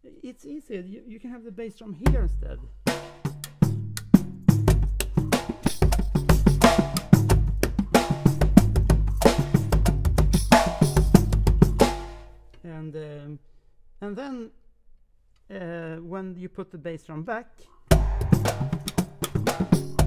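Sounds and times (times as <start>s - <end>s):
deep booming drum: 2.1s - 12.2s, 17.9s - 20.0s
quick strokes on small drums: 3.1s - 12.1s.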